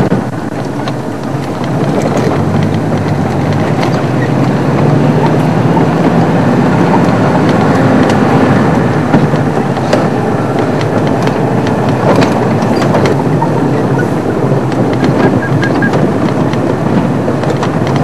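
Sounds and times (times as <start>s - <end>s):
knocks and rattles: 0.0s - 18.0s
vehicle engine running: 0.0s - 18.0s.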